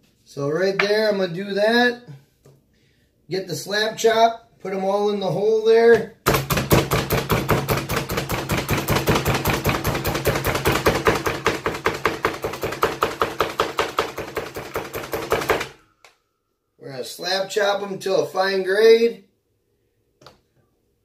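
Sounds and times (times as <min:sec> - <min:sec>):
manual food chopper clacking: 0:06.3 - 0:15.7.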